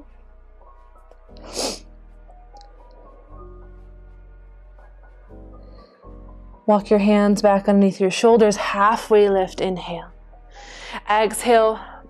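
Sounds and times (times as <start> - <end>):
soft background music: 0.0 - 12.0
short sharp breath: 1.4 - 1.8.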